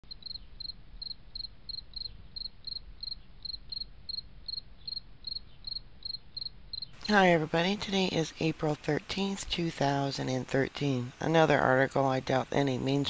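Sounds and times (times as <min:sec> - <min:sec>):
cricket chirping: 0:00.1 - 0:07.0.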